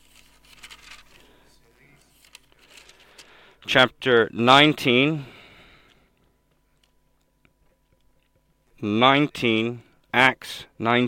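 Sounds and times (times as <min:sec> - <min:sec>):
thin pages turning: 0:00.0 - 0:03.4.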